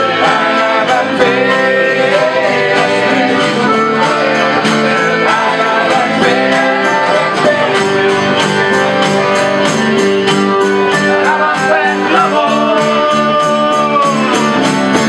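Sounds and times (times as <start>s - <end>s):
accordion sustained notes: 0.0s - 15.0s
strummed acoustic guitar: 0.0s - 15.0s.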